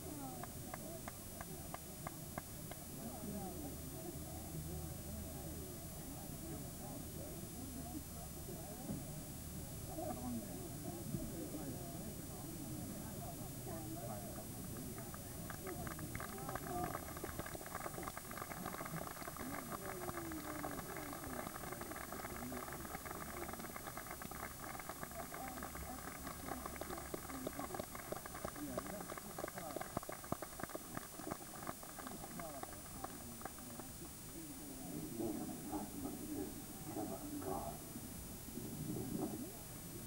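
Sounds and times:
voices chattering: 0.0 - 40.0
crowd clapping: 14.7 - 33.9.

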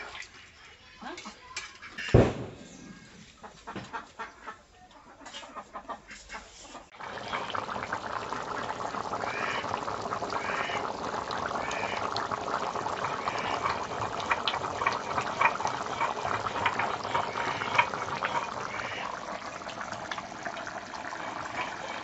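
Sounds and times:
curry bubbling with pops: 6.9 - 22.0.

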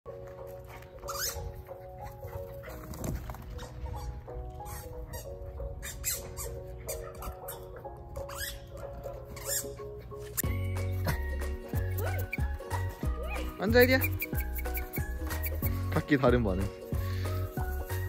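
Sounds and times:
light background music: 0.1 - 18.0.

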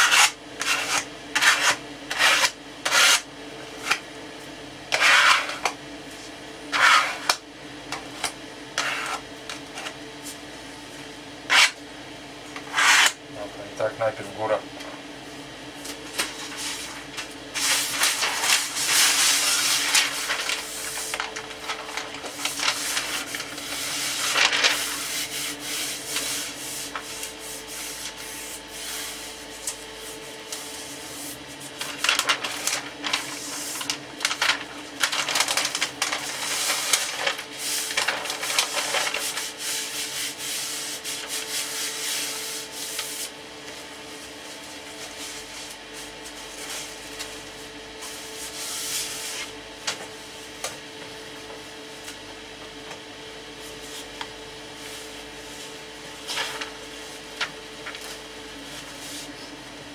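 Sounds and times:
wood veneer rustling and scraping: 16.3 - 47.3.

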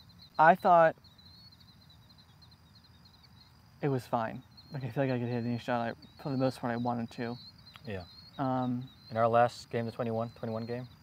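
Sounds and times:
insects chirring: 0.0 - 11.0
man speaking: 3.8 - 10.9.

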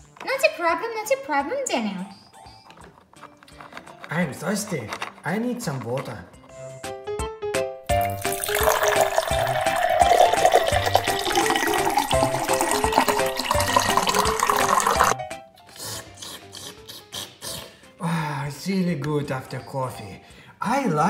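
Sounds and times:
light background music: 0.0 - 21.0
water running: 7.9 - 15.2.

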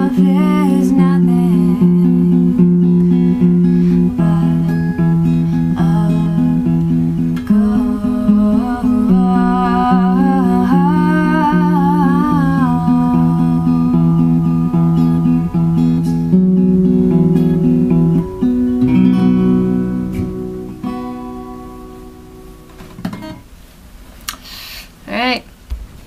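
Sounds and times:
woman singing wordless melody: 0.0 - 16.7
acoustic guitar picking: 0.0 - 23.6.

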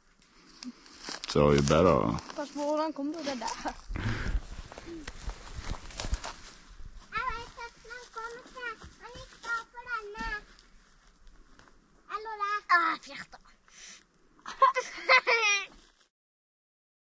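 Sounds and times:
rustling: 0.2 - 16.1
child's high-pitched voice: 2.4 - 3.8, 7.1 - 10.5, 12.1 - 13.5.

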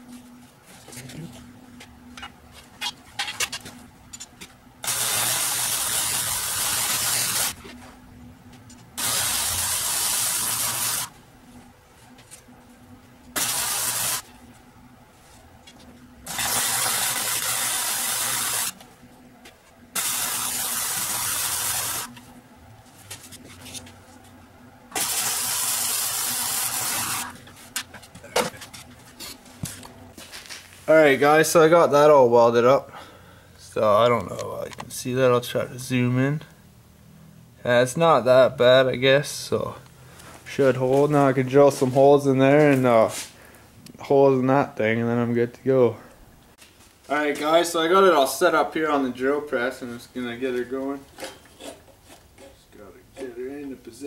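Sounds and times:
electric welder hissing: 4.8 - 7.7, 9.0 - 11.2, 13.3 - 14.4, 16.2 - 18.8, 19.9 - 22.2, 24.9 - 27.5.

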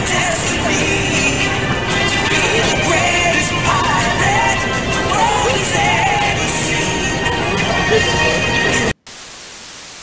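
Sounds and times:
music: 0.0 - 9.0
television static hiss: 0.0 - 10.0.

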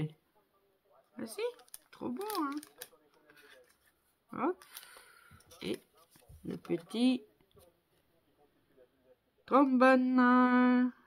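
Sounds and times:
plastic packet rustling: 1.5 - 3.8.

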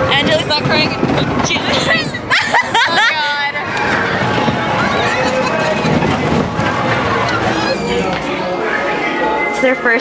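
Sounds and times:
amusement ride noise: 0.0 - 10.0
mix of voices: 0.0 - 10.0
women laughing and squealing: 1.7 - 6.3.

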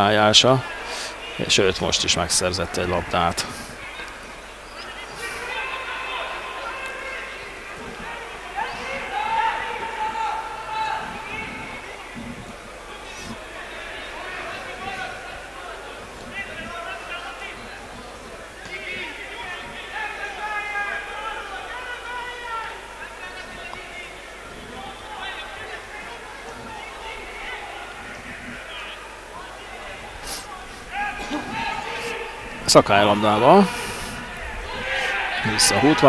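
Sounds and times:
distant crowd shouting and chanting: 0.0 - 36.0.

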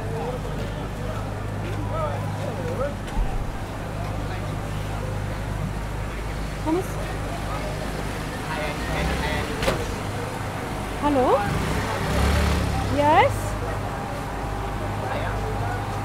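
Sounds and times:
traffic drone: 0.0 - 16.0.

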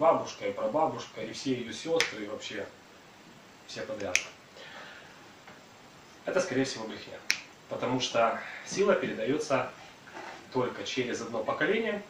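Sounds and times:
sharp click: 4.0 - 4.4.

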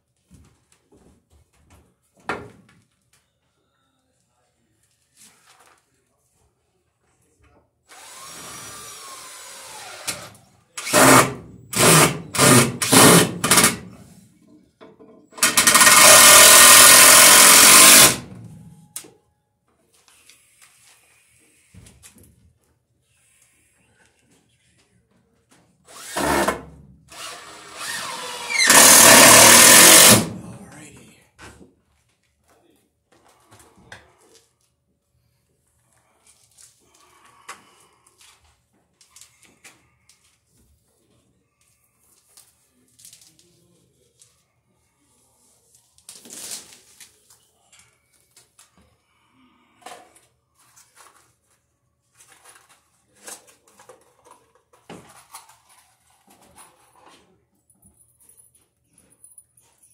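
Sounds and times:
cordless drill driving screws: 7.9 - 13.8, 15.4 - 18.2, 25.9 - 30.4.

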